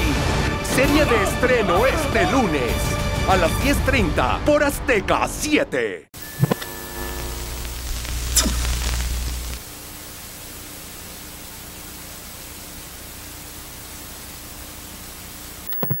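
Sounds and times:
tv static hiss: 6.2 - 16.0
glitchy sounds: 15.7 - 16.0.

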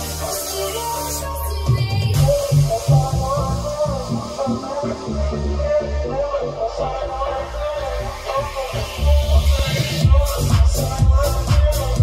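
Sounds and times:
electronic instrumental music: 0.0 - 12.0.

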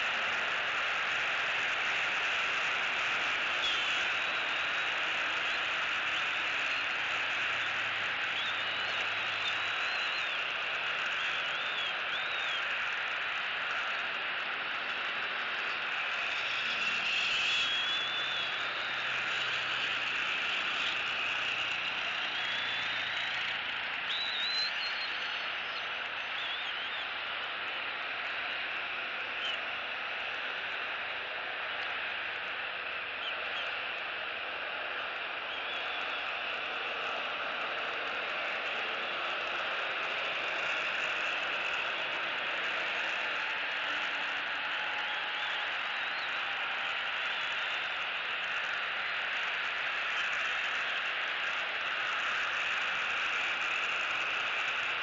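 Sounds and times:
high whistled bird calls: 0.0 - 27.3.

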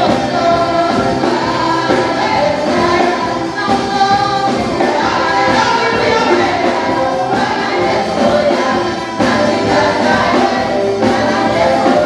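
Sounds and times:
backing singers: 0.0 - 12.0
drum kit: 0.0 - 12.0
keyboard: 0.0 - 12.0
woman singing lead vocal: 0.0 - 12.0.

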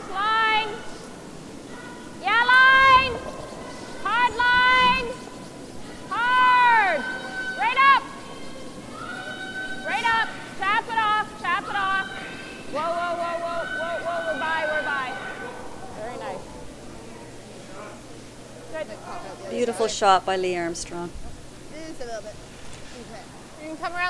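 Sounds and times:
people yelling sweeping calls: 0.0 - 16.6.

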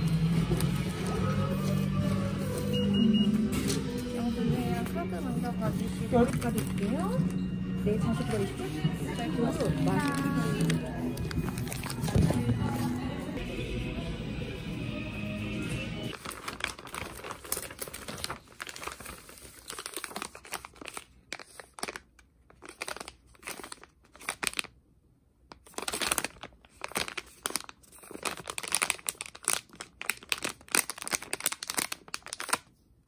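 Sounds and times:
foil candy pouch crinkling: 8.0 - 12.2, 16.1 - 24.8, 25.5 - 32.8.

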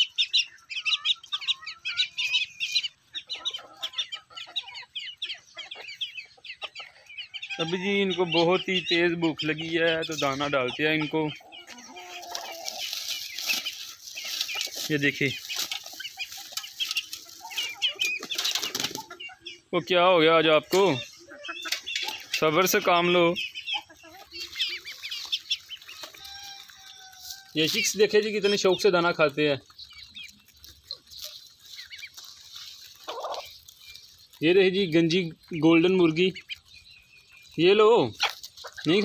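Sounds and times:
chicks peeping: 0.0 - 39.0
hens clucking: 0.0 - 39.0
hens flapping wings: 18.2 - 19.1.

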